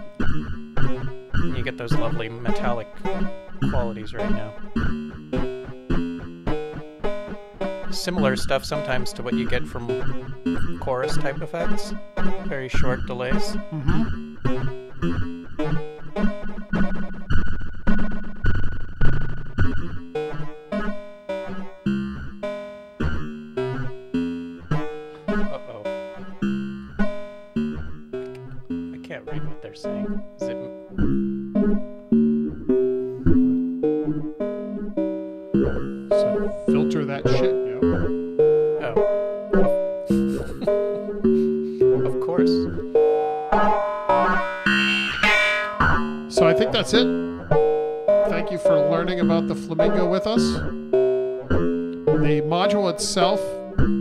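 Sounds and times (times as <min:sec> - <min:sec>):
synthesizer plucked notes: 0:00.0 - 0:54.0.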